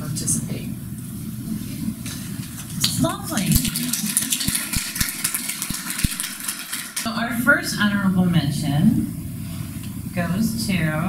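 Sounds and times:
audience applauding: 3.4 - 7.1.

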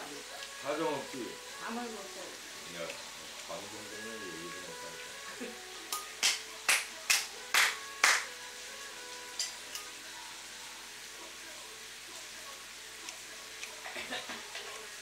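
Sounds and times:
meat sizzling in a pan: 0.0 - 15.0.

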